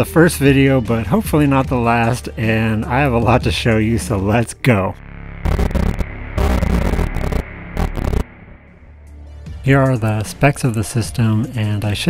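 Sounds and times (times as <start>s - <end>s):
stuttering static bursts: 5.0s - 8.9s
low hum: 5.0s - 9.2s.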